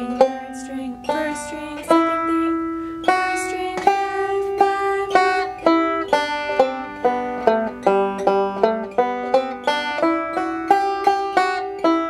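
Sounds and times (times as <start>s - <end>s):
banjo notes plucked slowly: 0.0s - 12.0s.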